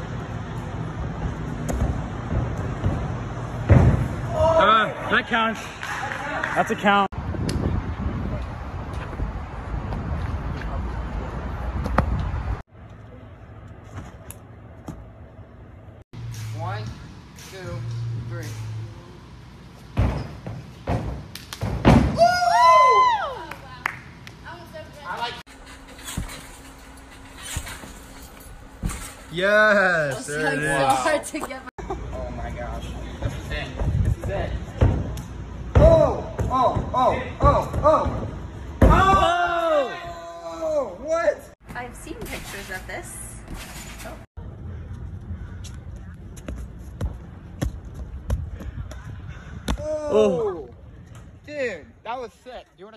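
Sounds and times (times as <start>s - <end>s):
thuds on gym mat: 20.0s - 22.2s.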